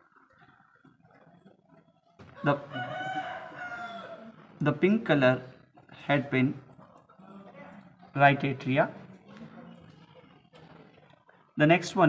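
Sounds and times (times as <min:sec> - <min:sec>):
rooster crowing: 0:02.4 - 0:04.4.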